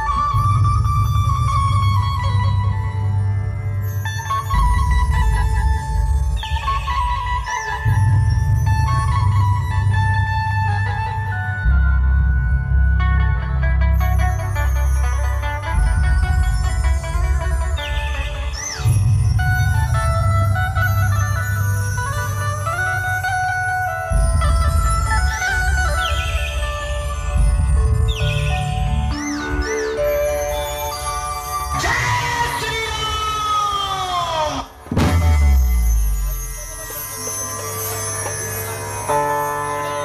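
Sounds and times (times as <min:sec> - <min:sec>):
electronic lead melody: 0:00.0 - 0:32.1
band music over sound system: 0:00.0 - 0:40.0
heavy bass and drum beats: 0:00.1 - 0:29.8.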